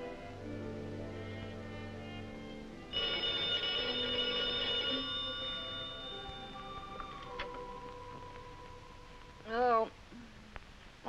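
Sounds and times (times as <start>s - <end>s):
quiet orchestral music: 0.0s - 10.5s
telephone bell ringing: 2.9s - 7.5s.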